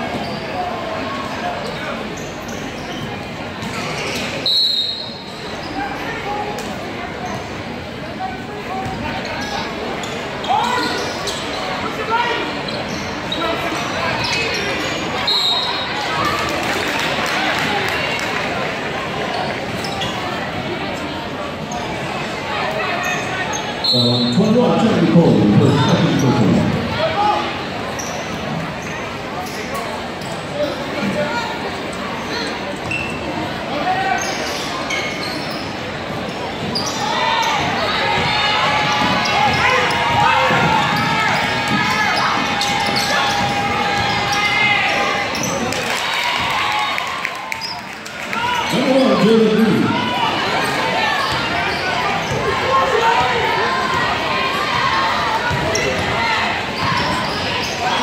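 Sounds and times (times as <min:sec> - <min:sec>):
loud nearby voices: 0:00.0 - 0:58.0
spectators' voices: 0:00.0 - 0:58.0
shoes squeaking: 0:09.2 - 0:15.9, 0:32.2 - 0:33.4, 0:34.0 - 0:45.7.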